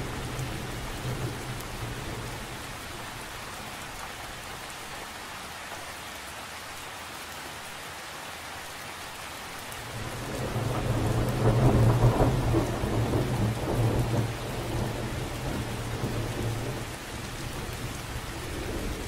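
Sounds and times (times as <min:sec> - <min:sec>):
rain falling on water: 0:00.0 - 0:19.0
thunder rolling: 0:10.0 - 0:16.8.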